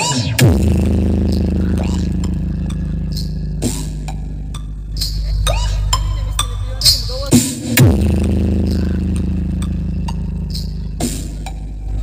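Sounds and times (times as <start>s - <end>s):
bass-heavy track on sound system: 0.0s - 12.0s
deep sustained bass note: 0.4s - 12.0s.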